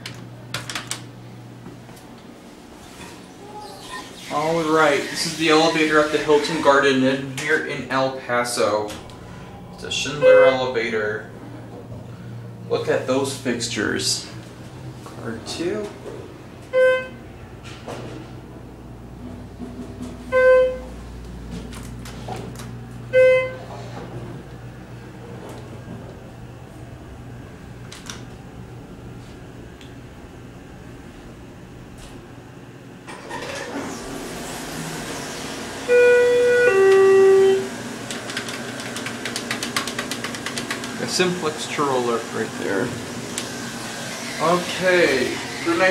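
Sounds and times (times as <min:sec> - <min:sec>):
steady low hum: 0:00.0 - 0:45.9
elevator electronic chime: 0:09.3 - 0:10.8, 0:35.8 - 0:37.8.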